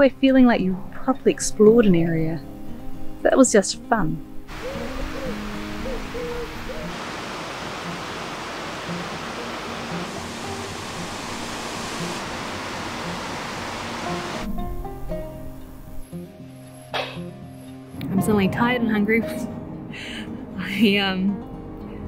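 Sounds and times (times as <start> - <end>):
soft background music: 0.0 - 6.9, 13.1 - 22.0
water rushing over weir: 4.5 - 14.6.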